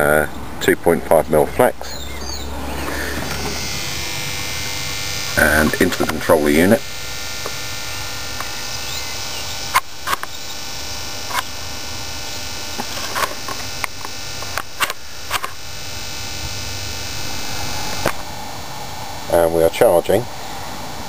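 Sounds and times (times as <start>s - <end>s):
background hiss: 0.0s - 21.0s
camera handling clicks and knocks: 9.8s - 10.4s.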